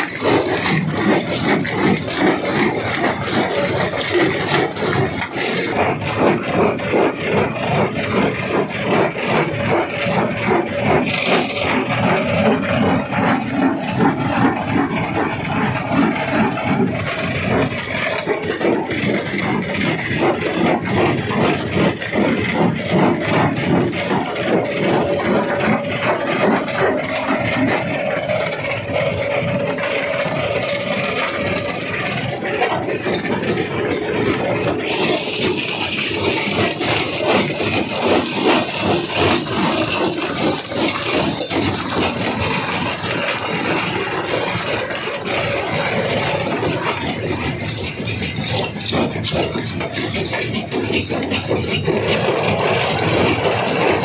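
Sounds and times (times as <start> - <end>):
machine drone: 0.0 - 54.0.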